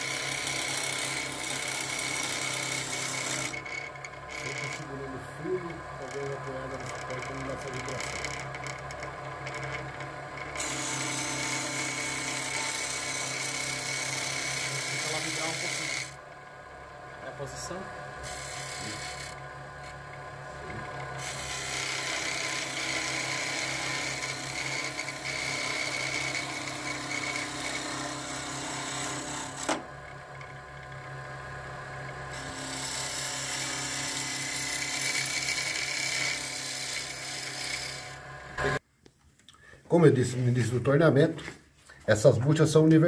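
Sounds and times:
turning tool scraping wood: 0.0 - 16.2, 18.2 - 29.8, 32.3 - 38.8
wood lathe motor hum: 0.0 - 38.8.

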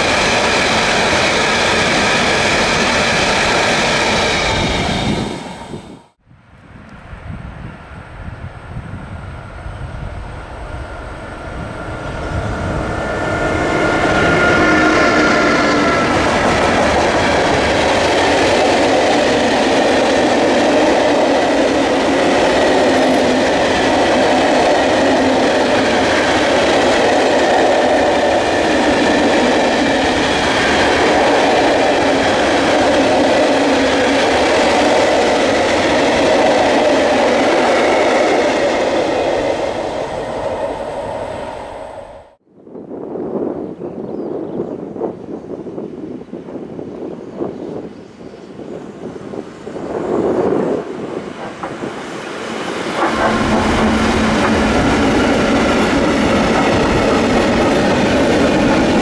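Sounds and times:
locomotive whining: 10.3 - 42.4, 49.8 - 59.0.

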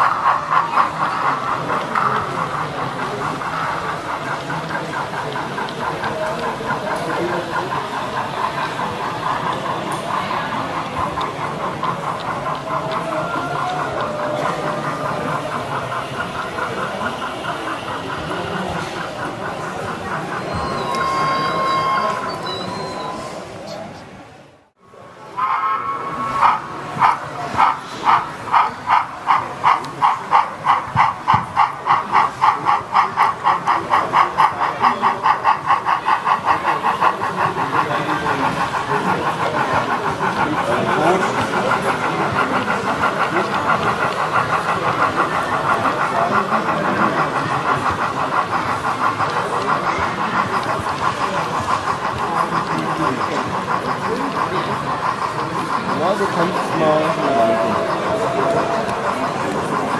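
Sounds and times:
model steam locomotive chuffs: 0.0 - 59.9.

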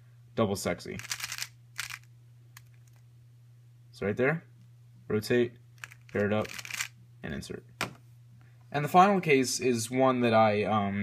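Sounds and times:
puzzle cube clicking: 1.0 - 3.0, 5.8 - 6.9.

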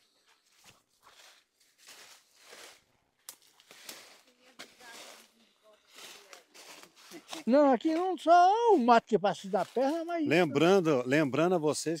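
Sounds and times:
footsteps through dry leaves: 0.4 - 10.8.

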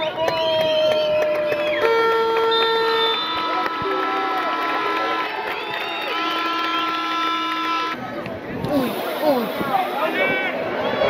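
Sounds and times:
crowd voices: 0.0 - 11.0
fans' horns blowing: 1.7 - 8.1.

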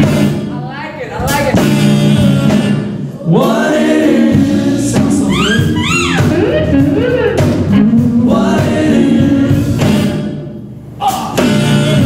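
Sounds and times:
live band playing: 0.0 - 12.0
voices singing held notes: 1.6 - 12.0.

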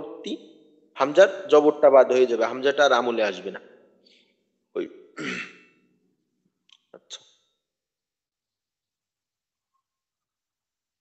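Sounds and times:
man clearing his throat: 5.2 - 5.7.

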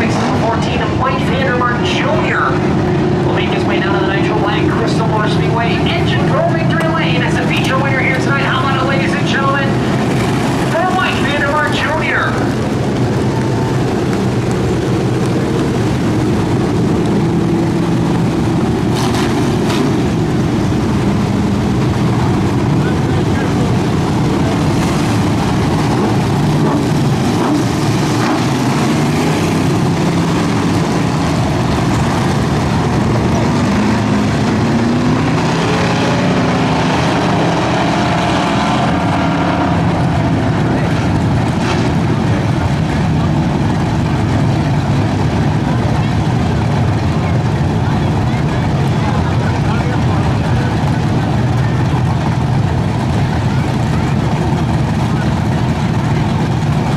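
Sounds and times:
race car engines rumbling: 0.0 - 56.9.

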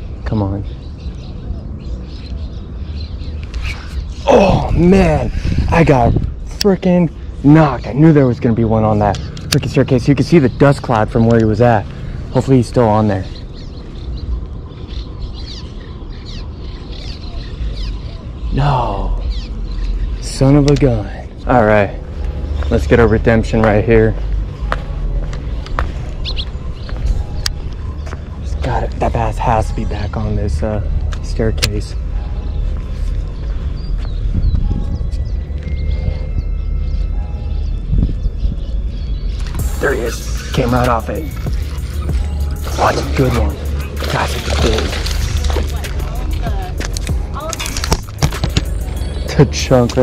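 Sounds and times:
birds chirping: 0.0 - 50.0
steady low rumble: 0.0 - 50.0
wind on microphone: 3.4 - 7.4, 32.6 - 39.7.

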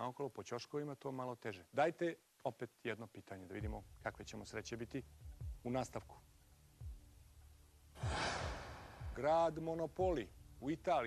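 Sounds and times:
sigh: 8.0 - 9.0.

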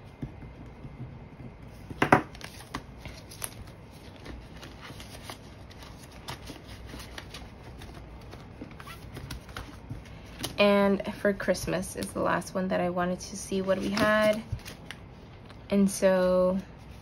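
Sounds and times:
banknotes and plastic pouch crinkling: 2.4 - 10.6.

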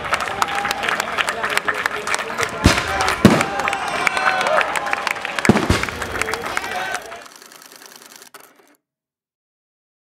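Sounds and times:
film projector clatter: 7.0 - 8.8.

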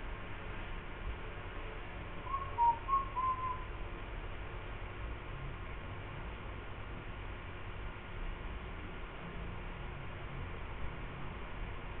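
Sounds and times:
short whistled notes: 2.3 - 3.7.

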